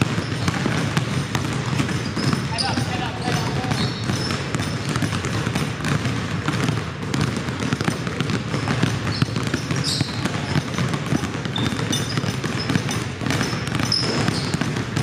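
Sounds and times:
basketballs bouncing on hardwood: 0:00.0 - 0:15.0
voices: 0:02.4 - 0:04.0.

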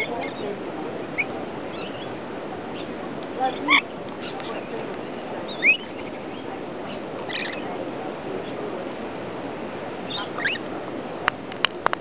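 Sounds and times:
steady background noise: 0:00.0 - 0:12.0
parrots squawking: 0:03.5 - 0:04.8, 0:05.5 - 0:07.7, 0:10.1 - 0:10.7.

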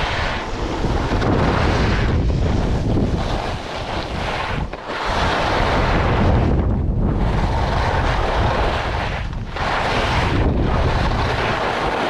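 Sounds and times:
skis hissing on packed snow: 0:00.0 - 0:06.2, 0:07.4 - 0:12.0
wind rushing over microphone: 0:00.0 - 0:12.0.

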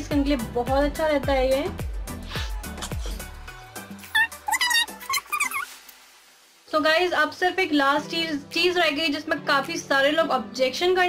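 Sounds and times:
background music with deep bass: 0:00.0 - 0:05.1.

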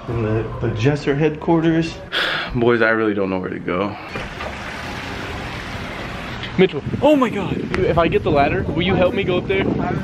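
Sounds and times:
wind rushing on microphone: 0:06.5 - 0:10.0.

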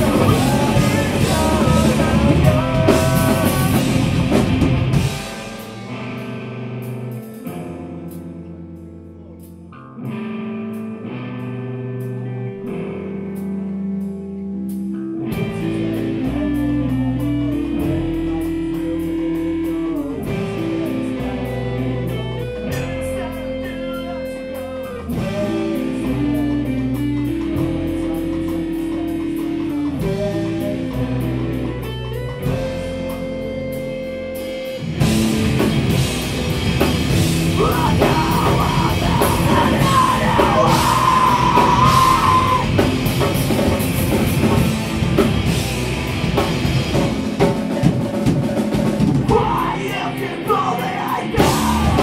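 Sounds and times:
rock band playing: 0:00.0 - 0:52.0
man shouting: 0:37.5 - 0:42.8, 0:49.3 - 0:52.0.

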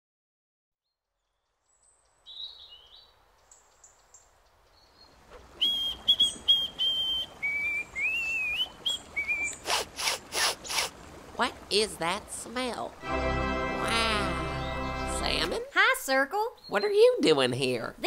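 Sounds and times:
soft outdoor hiss: 0:00.8 - 0:18.0
birds chirping: 0:01.2 - 0:10.0, 0:10.6 - 0:18.0
person sniffing: 0:09.6 - 0:11.0.

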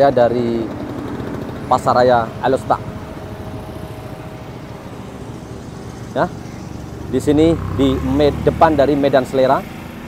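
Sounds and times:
car engines humming: 0:00.0 - 0:10.0.

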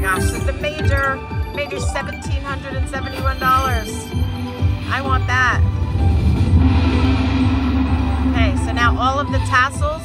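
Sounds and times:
slot machine music and effects: 0:00.0 - 0:10.0
deep low rumble: 0:05.6 - 0:10.0.

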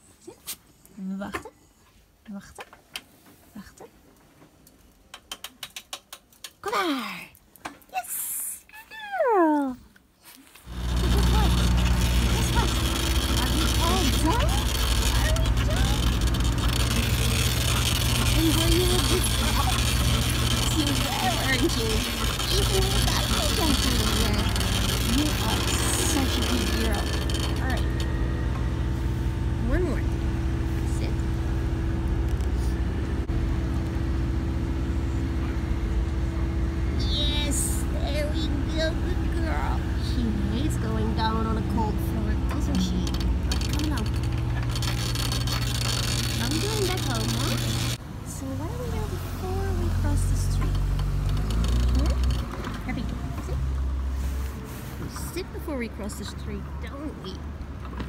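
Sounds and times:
low rumble of street noise: 0:10.0 - 0:58.0
wheelchair rattling over cobblestones: 0:10.6 - 0:29.0, 0:37.1 - 0:48.0, 0:48.9 - 0:54.1
wheelchair squeaks: 0:10.7 - 0:28.6, 0:41.2 - 0:48.0, 0:50.4 - 0:53.6.

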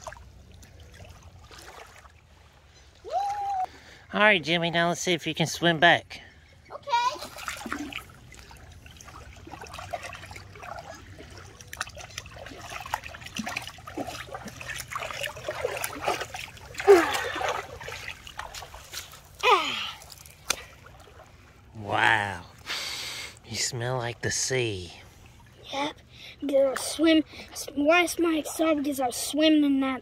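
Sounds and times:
water splashing and sloshing: 0:00.0 - 0:30.0.

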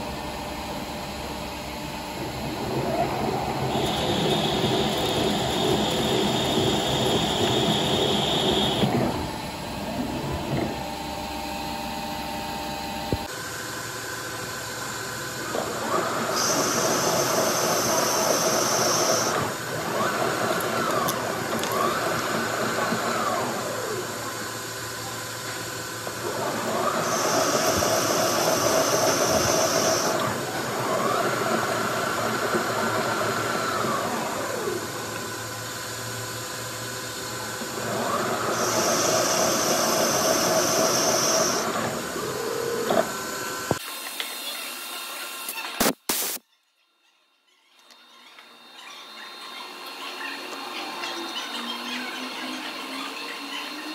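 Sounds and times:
machine whine: 0:00.0 - 0:46.4, 0:47.3 - 0:53.9
metal lathe cutting thread: 0:02.1 - 0:10.8, 0:15.6 - 0:24.2, 0:26.0 - 0:35.3, 0:36.8 - 0:43.7.

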